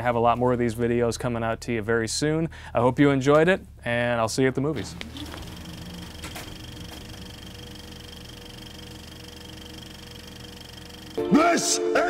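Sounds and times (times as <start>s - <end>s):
mechanical whirring hum: 3.5s - 11.4s.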